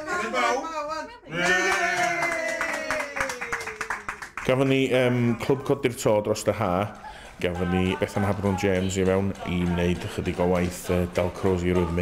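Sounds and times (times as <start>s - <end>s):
person cheering: 1.3s - 3.8s
small group clapping: 1.3s - 12.0s.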